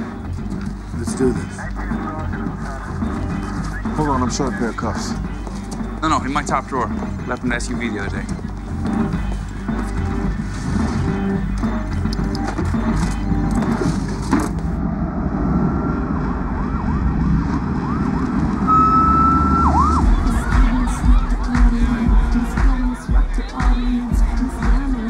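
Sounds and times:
heavy low beat: 0.0 - 14.8, 19.3 - 25.0
film score: 0.0 - 25.0
siren sweeping: 14.7 - 21.0.

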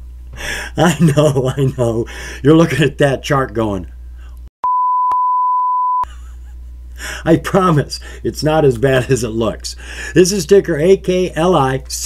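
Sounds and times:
censor beep: 4.6 - 6.1.

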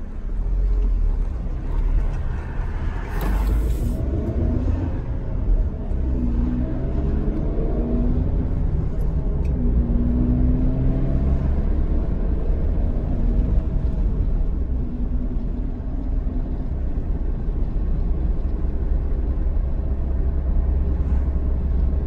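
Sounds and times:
car engine and road rumble: 0.0 - 22.0
faint engine hum: 0.0 - 22.0.

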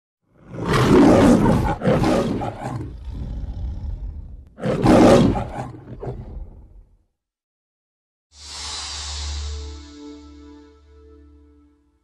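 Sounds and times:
lion roaring: 0.4 - 6.8.

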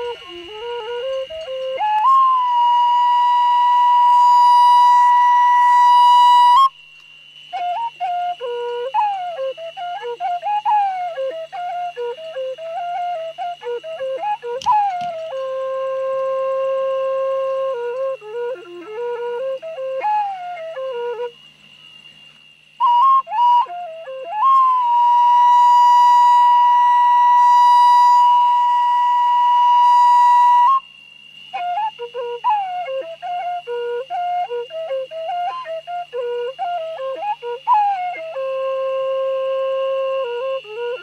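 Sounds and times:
bamboo free-reed pipe melody: 0.0 - 41.0.

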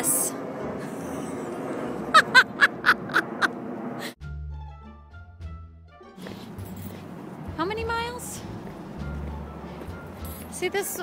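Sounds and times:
outdoor background noise: 0.0 - 4.2, 6.0 - 11.0
background music with low notes: 4.2 - 11.0.

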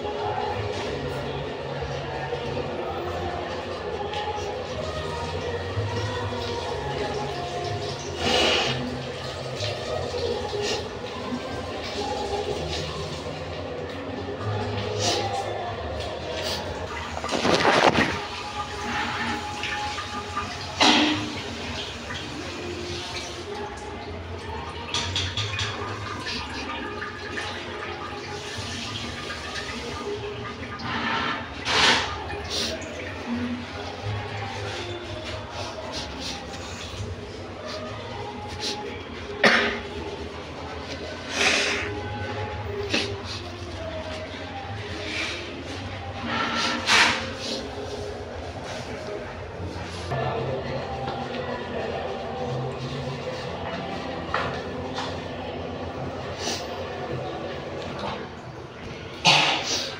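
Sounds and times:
water running: 0.0 - 59.9
woman blowing her nose: 41.3 - 41.9.

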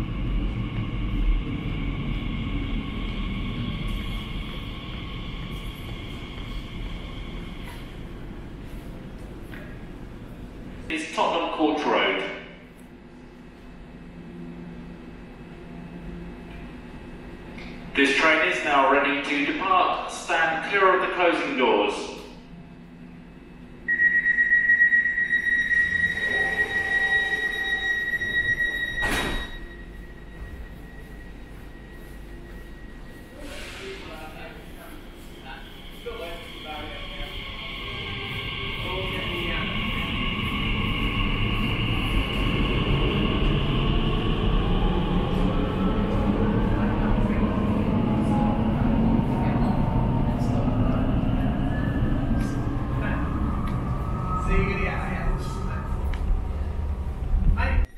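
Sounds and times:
train rumble and whining motors: 0.0 - 57.9
door-closing warning tone: 23.9 - 34.0.

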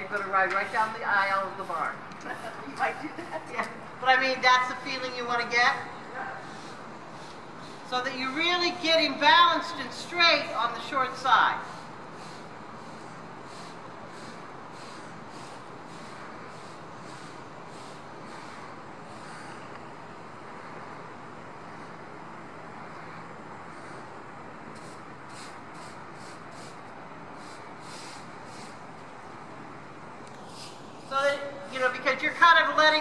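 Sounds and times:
person speaking: 0.0 - 4.8, 31.1 - 33.0
steady background hiss: 0.0 - 33.0.

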